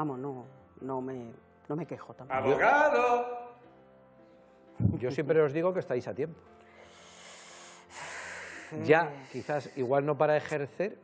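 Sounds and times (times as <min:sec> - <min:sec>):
person breathing close to microphone: 0:06.6 - 0:09.8.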